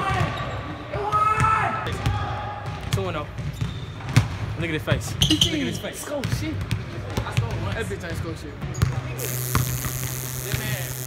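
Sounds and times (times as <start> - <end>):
basketballs bouncing on hardwood floor: 8.8 - 10.8.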